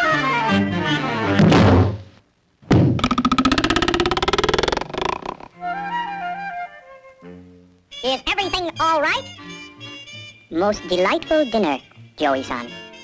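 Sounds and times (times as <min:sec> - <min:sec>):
cartoon buzzing rattle: 0:03.0 - 0:05.5
soft flute melody: 0:05.6 - 0:13.0.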